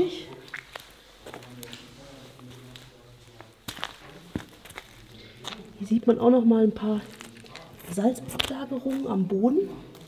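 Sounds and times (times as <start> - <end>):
footsteps on muddy gravel: 3.6 - 5.6.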